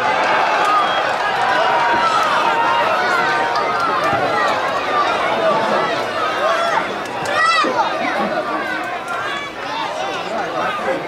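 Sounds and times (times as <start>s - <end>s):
players shouting: 0.0s - 11.0s
stadium crowd: 0.0s - 11.0s.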